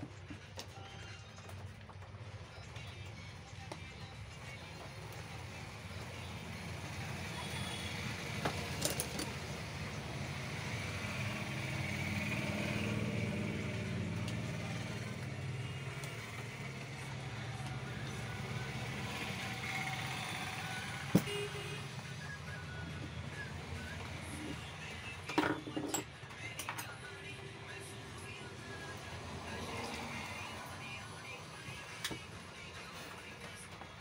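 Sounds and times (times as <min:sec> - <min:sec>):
passing vehicle rumble: 0:07.0 - 0:21.1
hand tools clicking on housing: 0:08.5 - 0:09.4.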